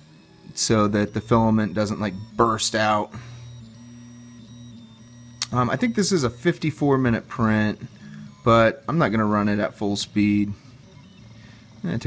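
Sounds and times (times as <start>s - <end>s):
stepper motors whining: 0.0s - 12.0s.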